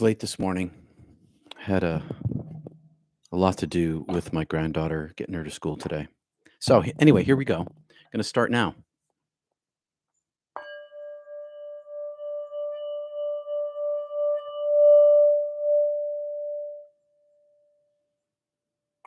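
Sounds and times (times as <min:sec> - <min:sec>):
singing bowl ringing: 0:10.6 - 0:17.4.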